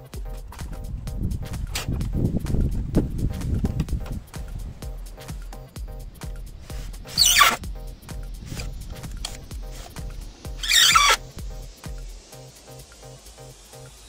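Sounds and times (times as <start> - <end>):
background music with beat: 0.0 - 14.0
cordless drill into wood: 10.6 - 11.2.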